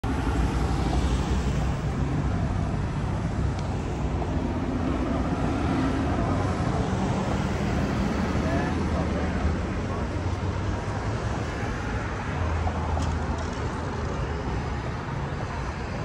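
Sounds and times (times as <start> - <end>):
city street traffic: 0.0 - 16.0.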